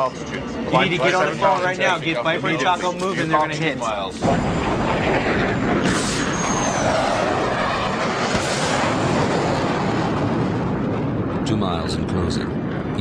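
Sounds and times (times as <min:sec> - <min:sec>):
jet engines roaring: 0:00.0 - 0:13.0
faint falling whistle: 0:05.8 - 0:07.3.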